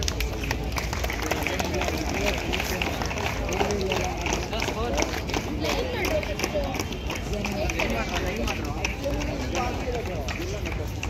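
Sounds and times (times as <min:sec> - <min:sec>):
babble of many voices: 0:00.0 - 0:11.0.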